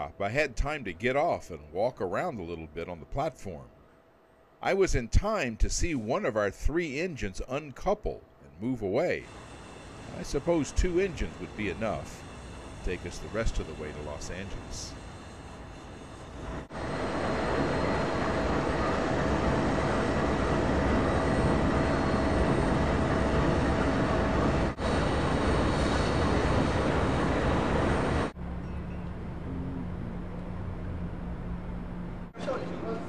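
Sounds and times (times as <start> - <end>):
diesel locomotive engine roar: 0.0 - 1.7, 8.8 - 33.0
faint whine: 0.0 - 33.0
steady low hum: 0.0 - 33.0.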